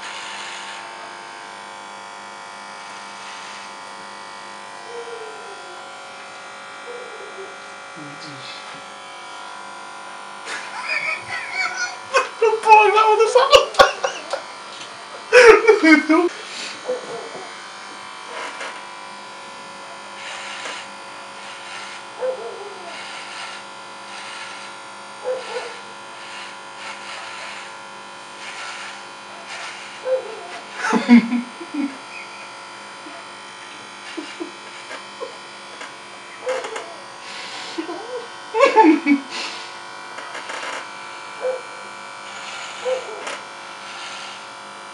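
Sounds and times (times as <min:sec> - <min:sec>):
electric hair clipper buzzing: 0:00.0 - 0:44.9
short vocal bursts: 0:08.0 - 0:08.8.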